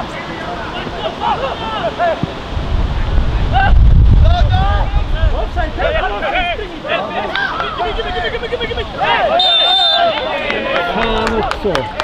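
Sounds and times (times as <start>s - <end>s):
men shouting and calling: 0.0s - 12.0s.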